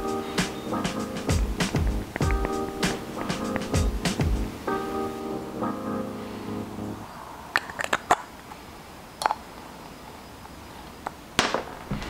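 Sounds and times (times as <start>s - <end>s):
room hiss: 0.0s - 7.6s.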